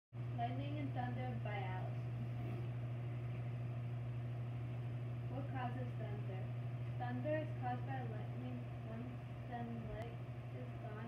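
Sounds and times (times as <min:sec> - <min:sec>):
steady low hum: 0:00.2 - 0:11.0.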